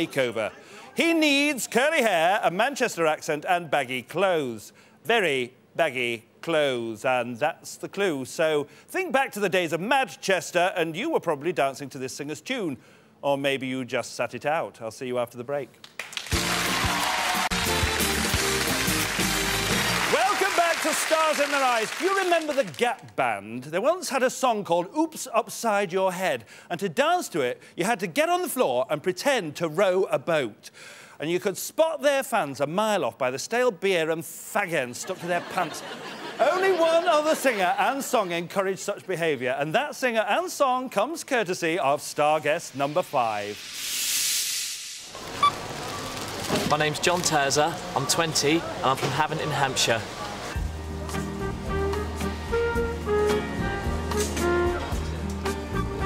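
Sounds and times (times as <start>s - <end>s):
television break music: 16.3s - 20.1s
bright hissing whoosh: 42.6s - 45.2s
supermarket background noise: 45.1s - 50.6s.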